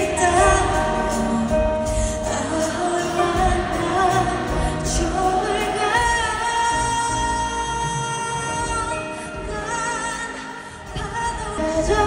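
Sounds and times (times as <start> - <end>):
woman singing with live band: 0.0 - 12.0.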